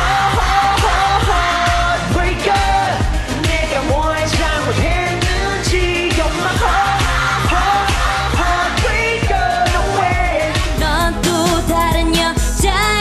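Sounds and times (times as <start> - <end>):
pop song with vocals and beat: 0.0 - 13.0.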